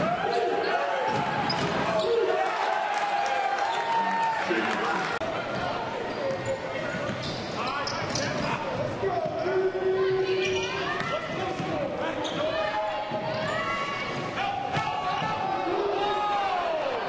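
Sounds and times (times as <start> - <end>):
sneakers squeaking: 0.0 - 2.3, 5.5 - 15.4.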